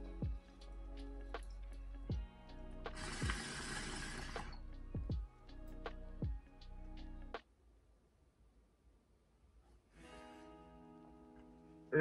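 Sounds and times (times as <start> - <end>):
hip-hop beat with deep bass: 0.0 - 3.7
water bubbling in a bong: 2.9 - 4.6.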